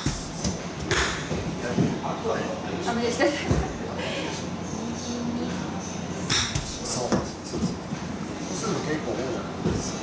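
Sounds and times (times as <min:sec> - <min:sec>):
golf club striking ball: 0:06.3 - 0:06.8.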